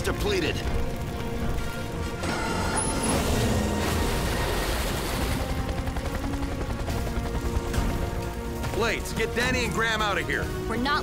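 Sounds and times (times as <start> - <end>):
crackling sound effects: 0.0 - 5.7
cartoon action music: 0.0 - 11.0.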